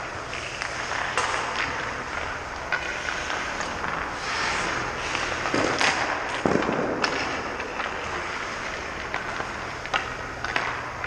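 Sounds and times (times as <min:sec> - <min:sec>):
hockey pucks cracking and thudding: 0:00.0 - 0:11.0.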